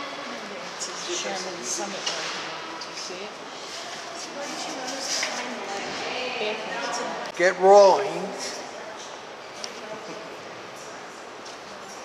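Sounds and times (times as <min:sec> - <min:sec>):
background chatter: 0:00.0 - 0:12.0
room noise: 0:00.0 - 0:12.0.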